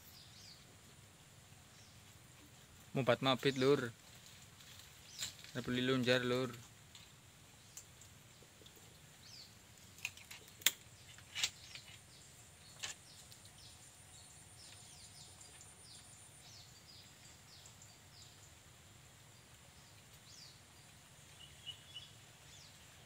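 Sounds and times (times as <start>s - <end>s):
small bird chirping: 7.6s - 18.6s, 19.8s - 23.0s.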